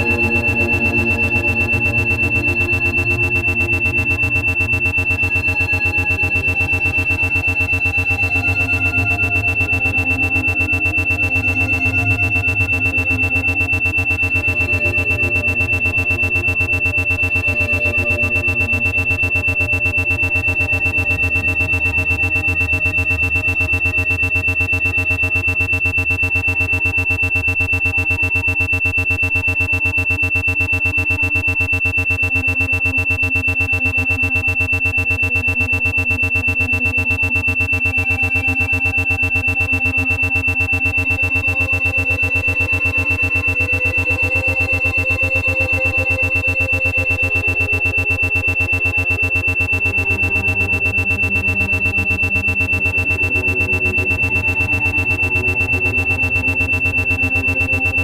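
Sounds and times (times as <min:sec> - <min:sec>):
ambient synthesizer pads: 0:00.0 - 0:58.0
high-pitched pulsing tone: 0:00.0 - 0:58.0.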